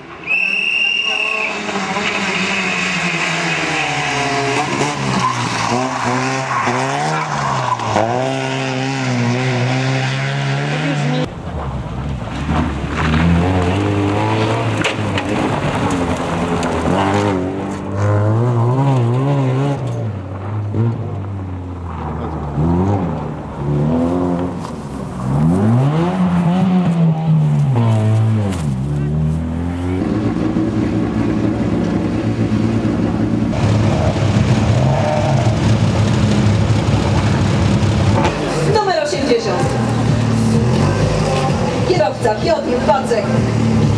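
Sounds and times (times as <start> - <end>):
rally car engine revving: 0.7 - 43.9.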